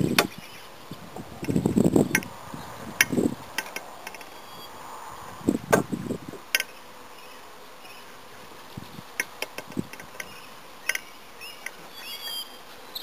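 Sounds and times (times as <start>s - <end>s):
honeybees buzzing: 0.0s - 13.0s
wooden hive frames knocking: 5.6s - 6.7s, 9.0s - 11.8s.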